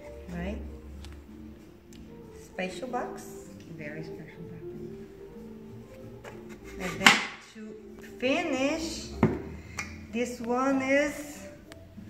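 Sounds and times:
faint background music: 0:00.0 - 0:12.0
soft knocks: 0:09.2 - 0:09.6.

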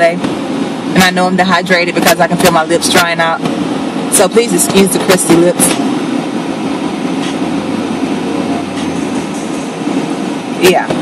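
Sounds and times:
car cabin rumble and hiss: 0:00.0 - 0:11.0
low hum: 0:00.0 - 0:11.0.

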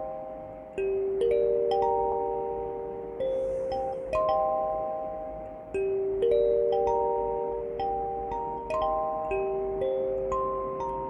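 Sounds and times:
kalimba melody: 0:00.0 - 0:11.0.

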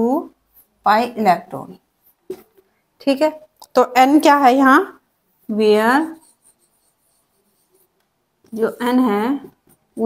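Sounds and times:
person speaking: 0:00.0 - 0:07.8, 0:08.5 - 0:10.0
marker pen scratching on surface: 0:00.3 - 0:02.6, 0:04.1 - 0:10.0.

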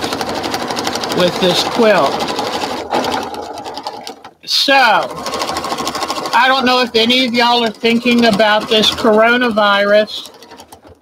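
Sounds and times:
sewing machine stitching: 0:00.0 - 0:11.0.

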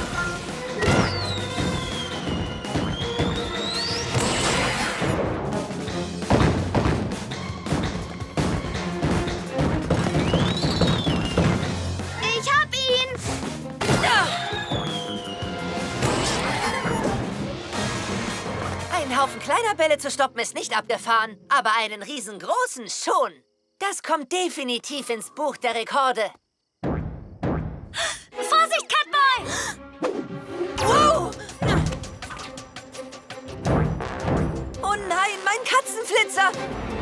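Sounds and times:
cartoon action music: 0:00.0 - 0:19.5, 0:28.4 - 0:32.7, 0:33.4 - 0:37.0
balls bouncing thuds: 0:06.2 - 0:11.8.

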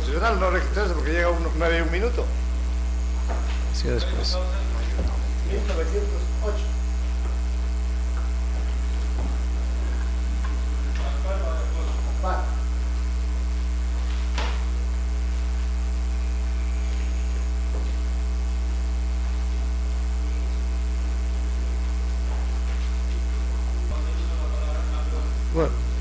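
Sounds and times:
electrical mains hum: 0:00.0 - 0:26.0.

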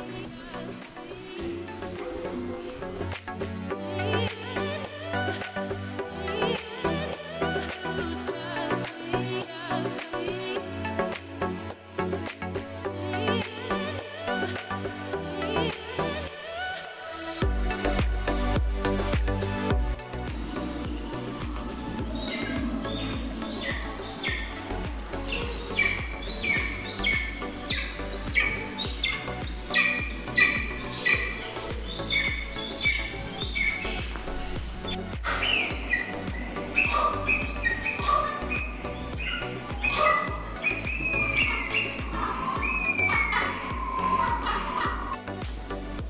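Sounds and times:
background music: 0:00.0 - 0:46.0
bird chirping and whistling: 0:20.6 - 0:34.2, 0:34.8 - 0:45.0.

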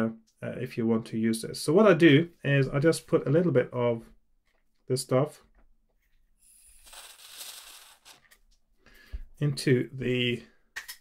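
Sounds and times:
aerosol spray hiss: 0:06.4 - 0:08.2.

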